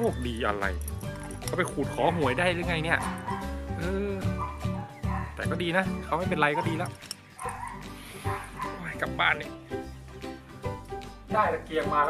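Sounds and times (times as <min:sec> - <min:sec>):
background music: 0:00.0 - 0:12.0
dog barking and yipping: 0:01.3 - 0:03.6, 0:04.3 - 0:05.4, 0:06.4 - 0:08.9.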